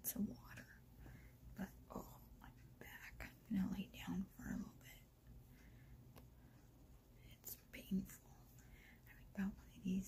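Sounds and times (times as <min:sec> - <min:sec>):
woman speaking quietly: 0:00.0 - 0:00.8, 0:01.6 - 0:05.1, 0:07.2 - 0:10.0
faint low room noise: 0:00.0 - 0:10.0.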